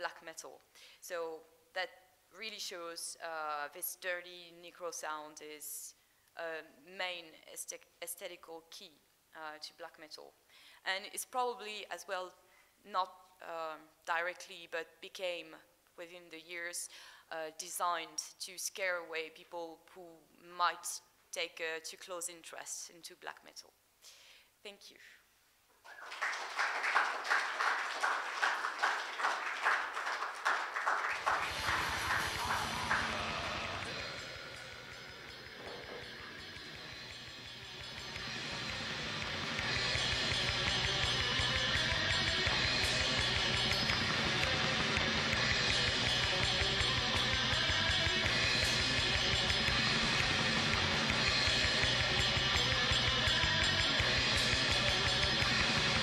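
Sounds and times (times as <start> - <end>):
audience applause: 25.9 - 36.8
heavy metal music: 31.2 - 56.0.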